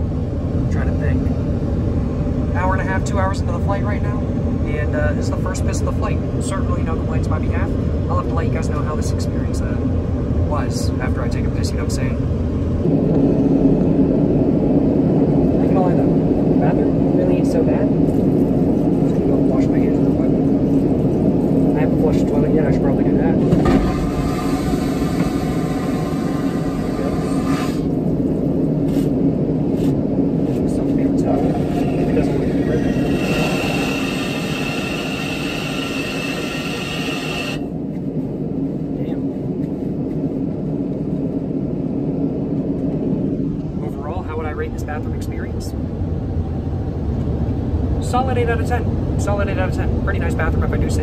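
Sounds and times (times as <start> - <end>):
airliner cabin drone: 0.0 - 51.0
high whine: 0.0 - 51.0.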